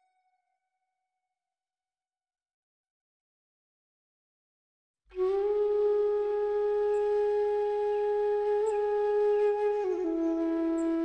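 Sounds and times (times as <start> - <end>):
flute holding long note: 5.1 - 11.0.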